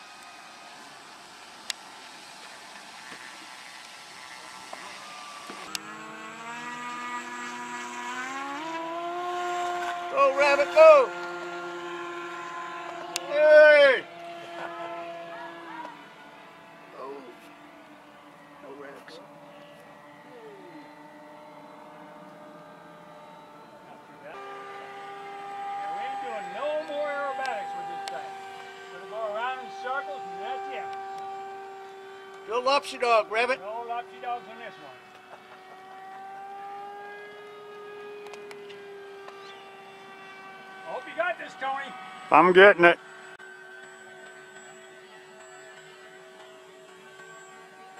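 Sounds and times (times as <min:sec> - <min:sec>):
model plane motor high-pitched whine: 0:00.0 - 0:47.9.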